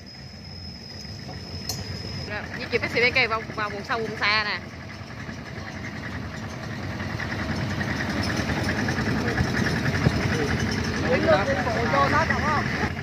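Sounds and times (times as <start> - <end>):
tractor engine chugging: 0.0 - 13.0.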